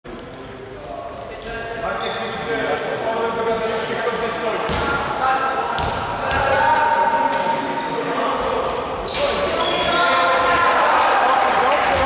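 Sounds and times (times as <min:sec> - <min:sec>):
voices in gym: 0:00.0 - 0:12.0.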